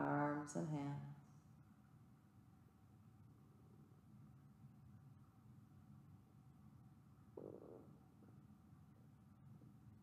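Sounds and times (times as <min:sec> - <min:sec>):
stomach gurgle: 0:07.4 - 0:08.1.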